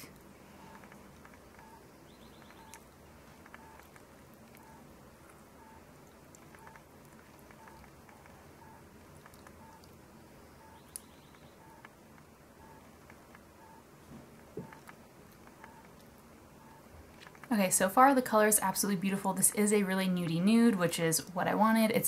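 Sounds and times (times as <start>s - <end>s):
faint chirp-like tone: 0.0s - 3.9s, 7.5s - 11.9s.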